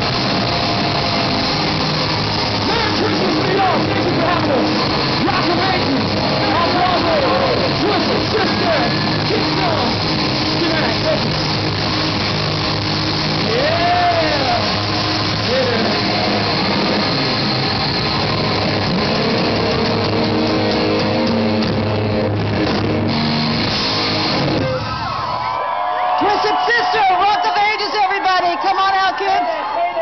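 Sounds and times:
hard rock band playing: 0.0 - 25.6
shouted vocals: 13.4 - 14.8.

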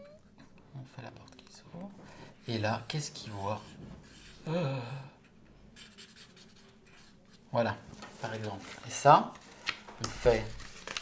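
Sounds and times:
pen scratching on paper: 5.8 - 7.1.

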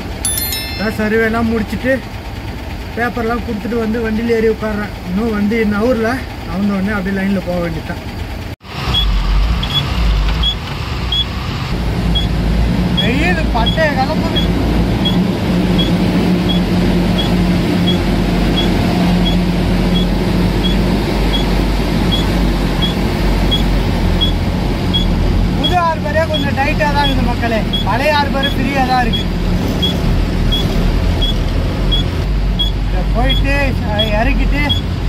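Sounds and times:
truck diesel engine running: 1.2 - 9.4, 10.9 - 35.0.

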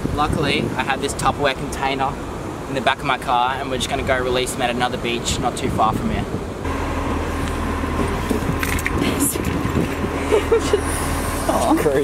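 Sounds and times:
people talking: 0.2 - 6.3, 8.9 - 9.7, 10.3 - 12.0
vehicle engine idling: 6.3 - 12.0
person laughing: 10.1 - 11.0.

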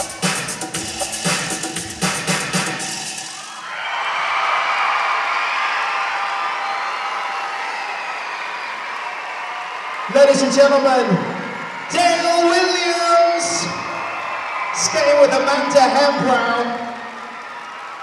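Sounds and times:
music with steady drum beat: 0.0 - 3.4
arena crowd applauding and cheering: 2.3 - 18.0.

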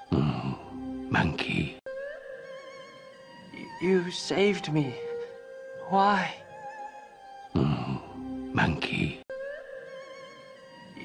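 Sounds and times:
quiet film score music: 0.0 - 11.0
voice: 0.1 - 1.8, 3.6 - 5.0, 5.8 - 6.4, 7.6 - 9.2.

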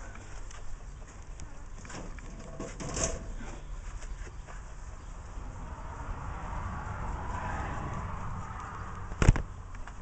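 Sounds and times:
wire cage rattling and clicking: 1.8 - 3.4.

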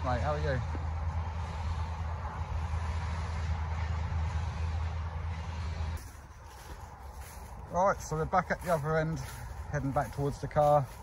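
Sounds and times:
machinery engine drone: 0.0 - 11.0.

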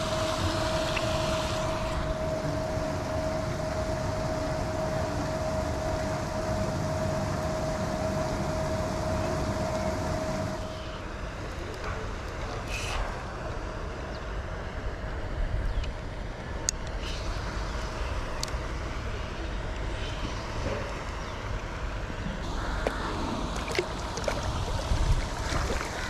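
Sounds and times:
low outdoor rumble: 0.0 - 26.0.

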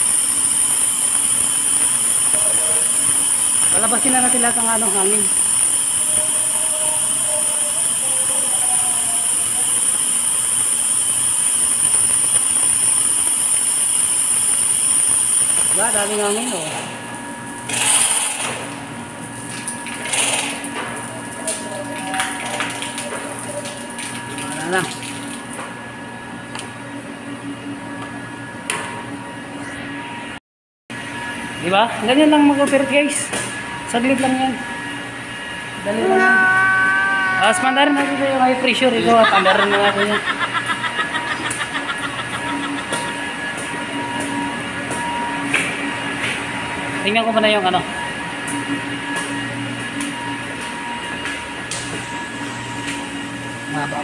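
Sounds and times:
air and water spitting from valve: 0.0 - 4.2, 5.2 - 15.8
pumps humming: 0.0 - 25.8, 31.7 - 46.4.

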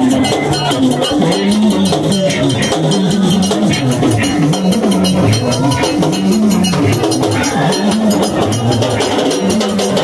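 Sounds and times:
man singing into a microphone: 0.0 - 10.0
metallic percussion beat: 0.0 - 10.0.

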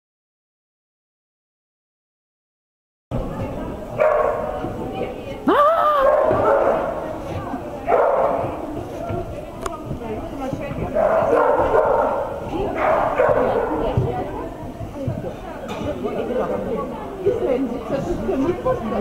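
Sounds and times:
other voices: 3.2 - 19.0
dog barking: 4.0 - 4.5, 6.0 - 6.9, 7.9 - 8.5, 11.0 - 13.9.

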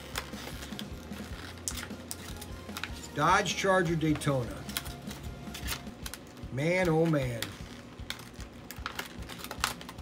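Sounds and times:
plastic package crackling: 0.0 - 10.0.

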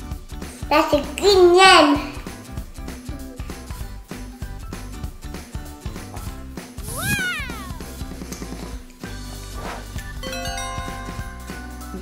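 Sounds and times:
background music with steady beat: 0.0 - 12.0
high voice saying wow: 6.9 - 7.9.

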